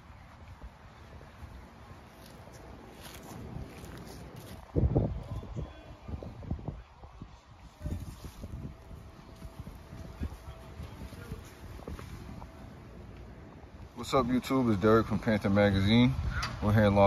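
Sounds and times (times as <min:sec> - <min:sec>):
wind buffeting microphone: 0:02.7 - 0:17.0.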